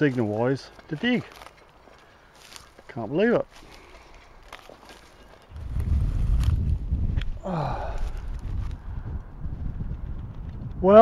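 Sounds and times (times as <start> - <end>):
wind buffeting microphone: 5.4 - 11.0.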